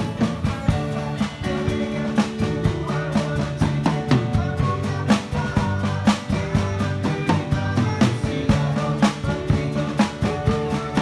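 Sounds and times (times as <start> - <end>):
bass and guitar music: 0.0 - 11.0
drum kit with snare and cymbals: 0.0 - 11.0.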